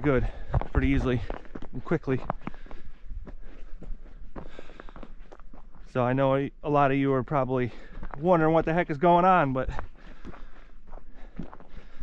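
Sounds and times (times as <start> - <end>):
footsteps on icy gravel: 0.0 - 12.0.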